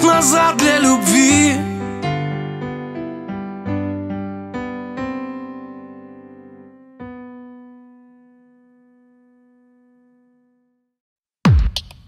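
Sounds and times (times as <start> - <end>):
electric piano chords: 0.0 - 10.8.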